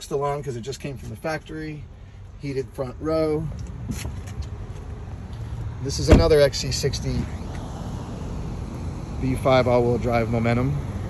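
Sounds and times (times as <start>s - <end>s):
man's voice: 5.8s - 7.4s.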